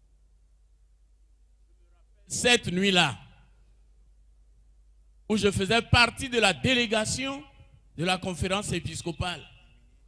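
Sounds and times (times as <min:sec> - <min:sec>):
faint low hum: 0:00.0 - 0:10.0
man speaking over microphone: 0:02.2 - 0:03.4, 0:05.3 - 0:09.6.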